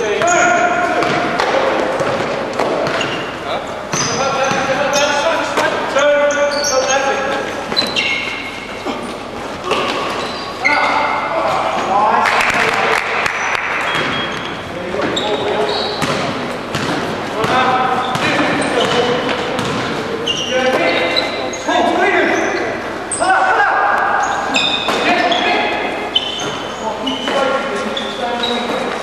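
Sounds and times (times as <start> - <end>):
sneakers squeaking: 0.0 - 12.3, 13.2 - 29.0
players calling indistinctly: 0.0 - 29.0
basketball bouncing on court: 0.2 - 3.3, 3.9 - 5.0, 13.8 - 21.2.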